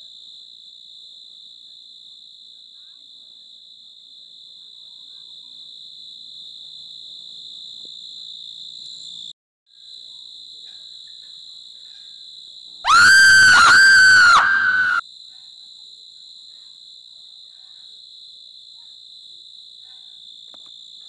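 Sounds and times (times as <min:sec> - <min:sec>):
high-pitched swooping shriek: 0:12.9 - 0:15.0.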